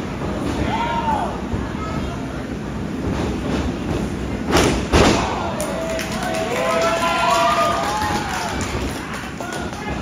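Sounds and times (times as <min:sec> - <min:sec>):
loud thud on wrestling ring mat: 0:04.5 - 0:05.4.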